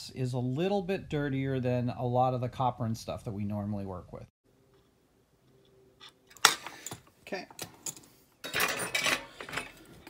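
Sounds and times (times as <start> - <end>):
metal tools clinking on workbench: 7.6 - 9.9.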